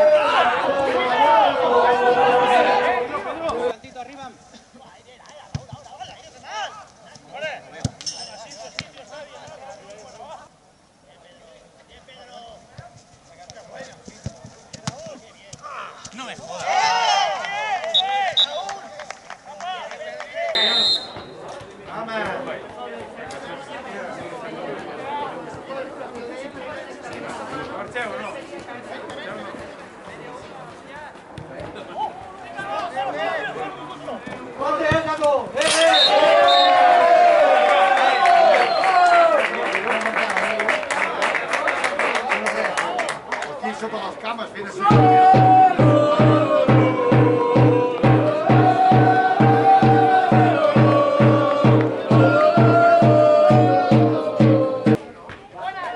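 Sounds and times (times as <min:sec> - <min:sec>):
footballers calling and shouting: 0:00.0 - 0:55.9.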